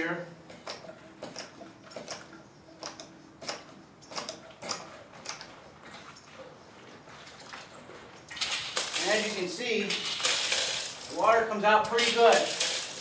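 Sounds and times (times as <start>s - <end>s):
pump clicks: 0.5s - 6.0s.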